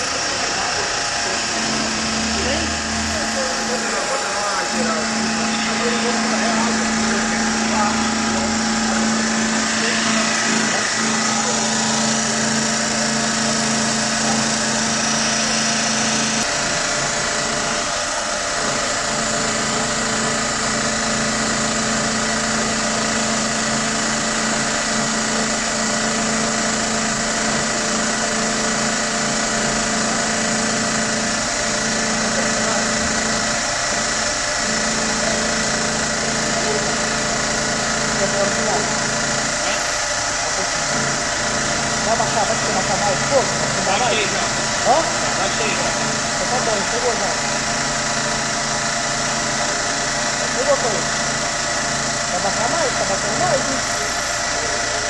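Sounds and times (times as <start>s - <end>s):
metal lathe humming: 0.0s - 55.0s.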